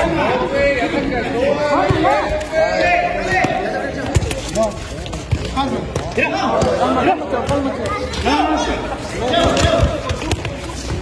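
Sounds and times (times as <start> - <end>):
people shouting and chattering: 0.0 - 11.0
football kicked and bouncing: 5.2 - 8.0, 9.3 - 11.0.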